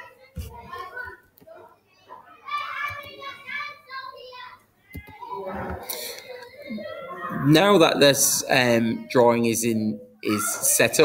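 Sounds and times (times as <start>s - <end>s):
indistinct voices talking: 0.0s - 9.3s.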